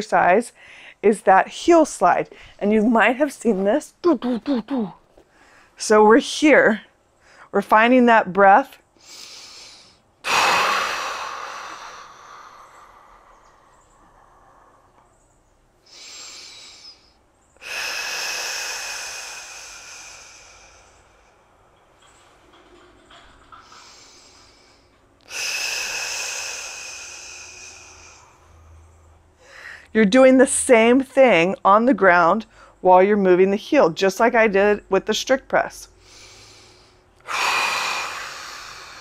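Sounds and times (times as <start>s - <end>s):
woman breathing deeply: 0.6s - 1.0s, 5.3s - 5.8s, 9.0s - 29.9s, 36.0s - 39.0s.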